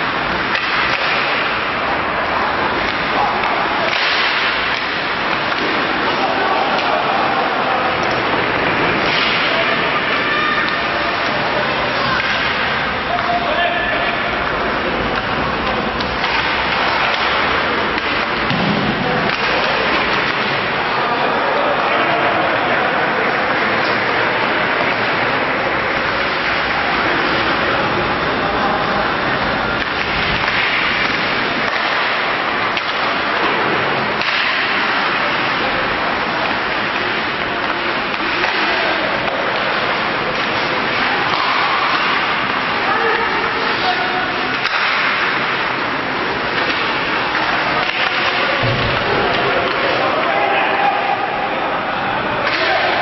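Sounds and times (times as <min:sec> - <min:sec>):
sharp crack of stick or puck: 0:00.0 - 0:21.0, 0:23.2 - 0:51.1, 0:52.4 - 0:53.0
ice rink crowd noise hiss: 0:00.0 - 0:53.0.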